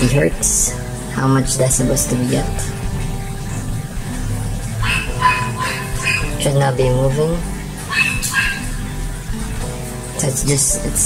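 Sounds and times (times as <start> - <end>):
low test tone hum: 0.4 - 9.6.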